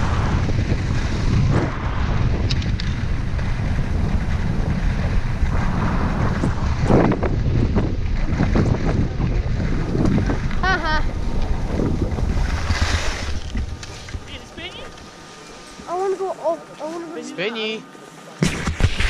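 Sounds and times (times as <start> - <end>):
wind buffeting microphone: 0.0 - 16.3
skis scraping on packed snow: 11.2 - 18.4.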